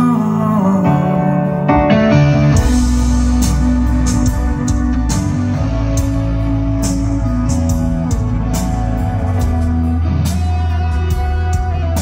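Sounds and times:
bass guitar: 0.0 - 12.0
electric guitars: 0.0 - 12.0
drums and cymbals: 2.4 - 12.0.

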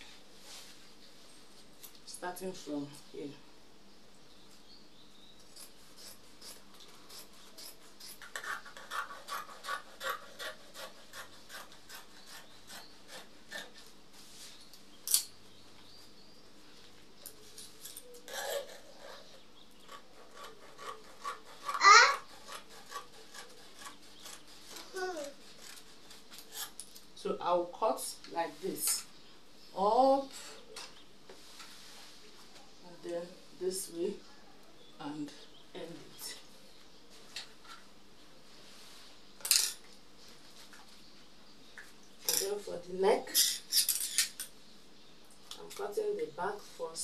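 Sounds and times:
hands rubbing fabric on floor: 31.3 - 32.6.

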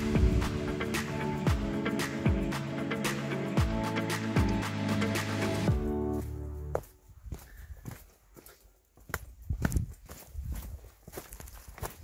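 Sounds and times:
background music: 0.0 - 6.9
footsteps on rocky trail: 5.7 - 12.0.

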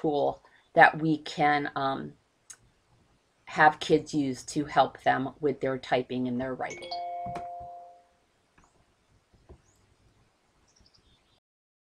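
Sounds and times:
computer electronic chime: 6.7 - 8.1.

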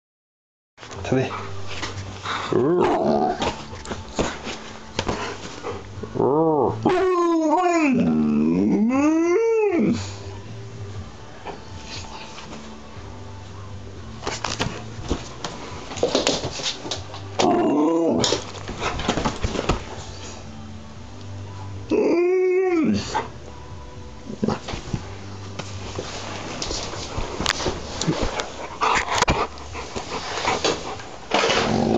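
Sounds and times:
dog howling moans: 2.2 - 3.7, 5.2 - 10.1, 17.4 - 18.4, 21.9 - 23.3
rustling: 24.4 - 31.9.

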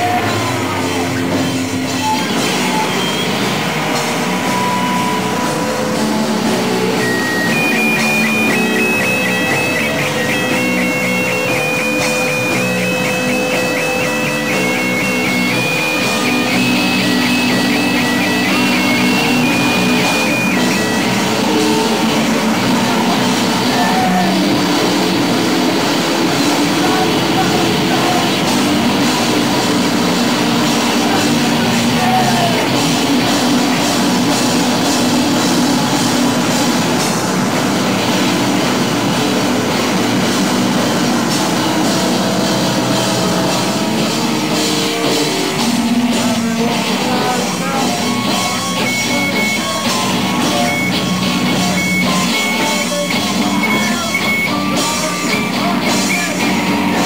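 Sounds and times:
high tone alternating pitches: 0.0 - 57.0
noise rock band playing: 0.0 - 57.0.

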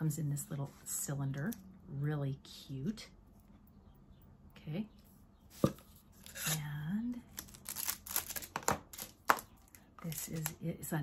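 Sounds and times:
package tearing and rustling: 7.3 - 9.4.

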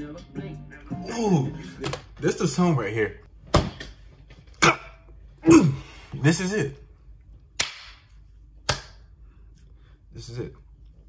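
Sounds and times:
hand claps: 7.6 - 8.1.

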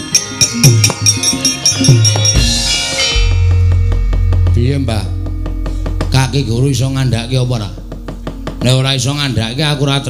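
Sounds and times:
drum stroke bending down: 1.8 - 10.0
deep gong hum: 2.4 - 10.0.

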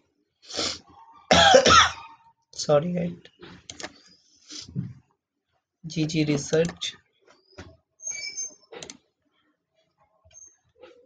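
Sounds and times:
person coughing: 1.3 - 2.0.

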